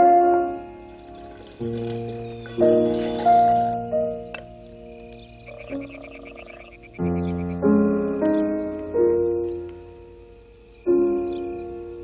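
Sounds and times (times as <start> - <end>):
loud piano chords: 0.0 - 12.0
piano notes: 0.0 - 12.0
frog croaking: 0.9 - 3.8, 5.0 - 7.4.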